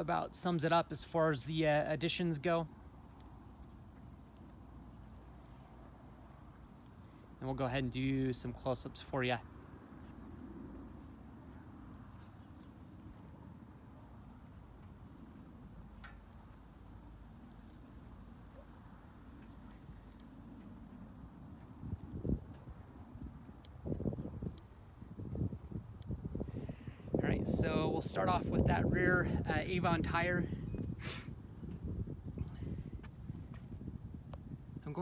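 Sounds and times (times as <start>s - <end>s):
wind rumble on microphone: 9.4s - 35.0s.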